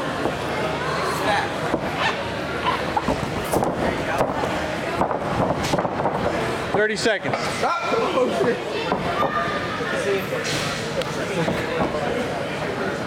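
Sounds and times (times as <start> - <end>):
coaches and spectators calling out: 6.7 - 12.7.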